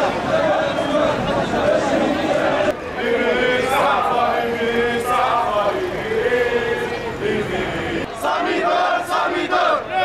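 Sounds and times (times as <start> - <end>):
crowd chanting in unison: 0.0 - 10.0.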